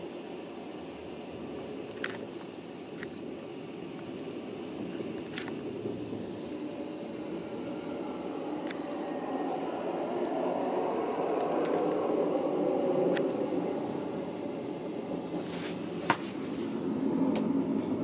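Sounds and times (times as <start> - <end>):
faint clicks: 13.1 - 13.4.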